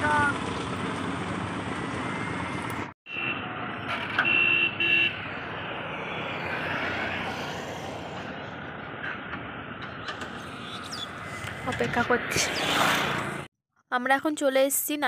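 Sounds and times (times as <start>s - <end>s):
roadside traffic: 0.0s - 13.5s
vehicle horn honking: 3.1s - 3.5s, 4.2s - 5.2s.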